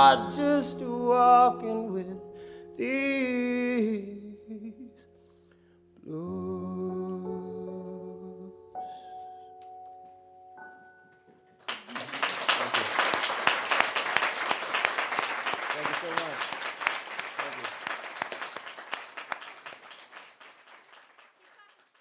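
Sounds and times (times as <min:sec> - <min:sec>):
audience applause: 0:11.6 - 0:22.0.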